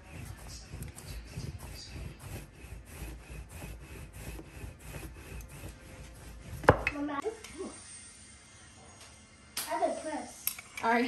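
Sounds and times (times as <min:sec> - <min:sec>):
rolling pin rubbing on dough: 0:00.0 - 0:07.2.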